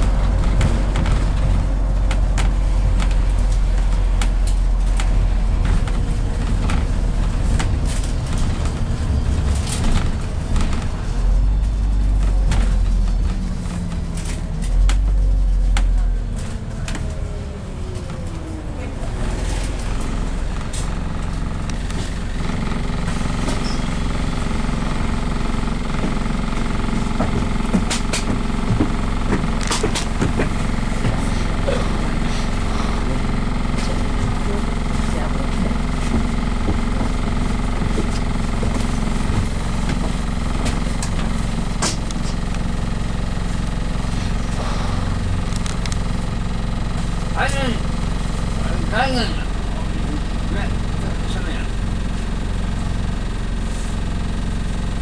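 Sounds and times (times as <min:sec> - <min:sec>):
bus engine running: 0:00.0 - 0:55.0.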